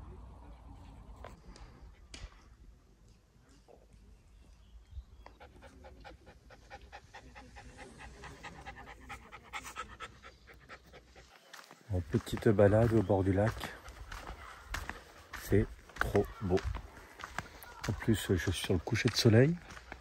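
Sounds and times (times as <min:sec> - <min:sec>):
puppy panting: 0:05.2 - 0:11.8, 0:13.5 - 0:15.1.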